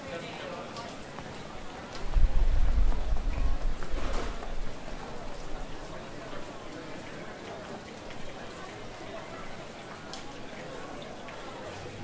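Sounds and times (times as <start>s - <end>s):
rain pattering: 0.0s - 12.0s.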